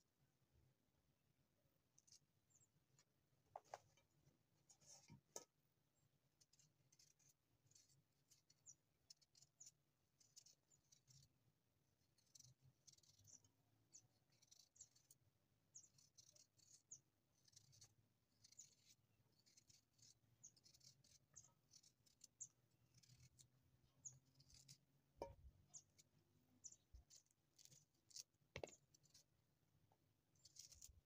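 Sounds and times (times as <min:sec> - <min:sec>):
knife scraping peach skin: 0:15.9 - 0:26.1, 0:26.7 - 0:29.3, 0:30.4 - 0:31.0.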